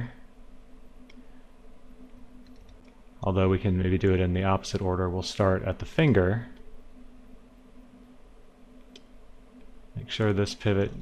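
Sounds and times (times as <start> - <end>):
low steady hum: 0.0 - 11.0
faint click: 1.0 - 1.2, 8.8 - 9.7.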